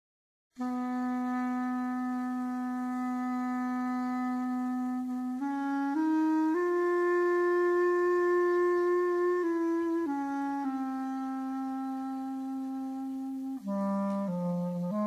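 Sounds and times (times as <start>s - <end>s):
solo clarinet: 0.6s - 15.0s.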